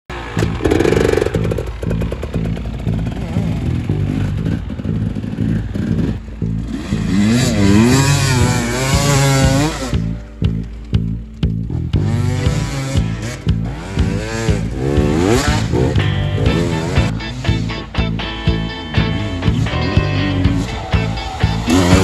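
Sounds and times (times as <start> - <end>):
motorcycle engine revving: 0.1 - 22.0.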